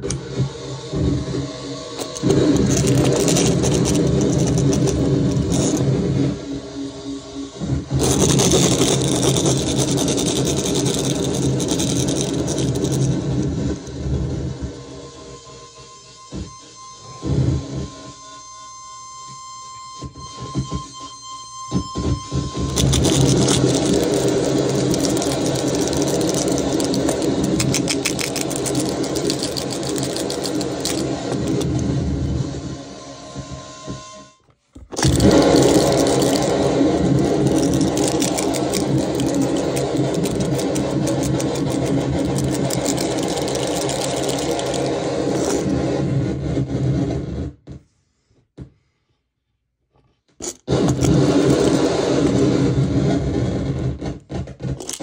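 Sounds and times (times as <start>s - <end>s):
loud distorted noise: 0.0s - 14.8s, 22.0s - 33.6s, 34.8s - 47.6s, 50.4s - 55.0s
scattered crackles: 2.0s - 6.0s, 7.9s - 14.0s, 22.0s - 32.4s, 34.8s - 47.1s, 50.4s - 55.0s.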